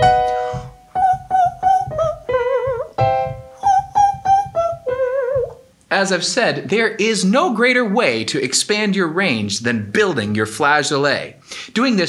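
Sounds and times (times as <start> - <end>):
piano chord: 0.0 - 3.7.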